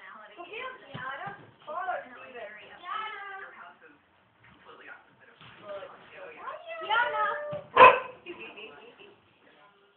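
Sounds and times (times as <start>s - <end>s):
large dog barking: 7.7s - 8.2s.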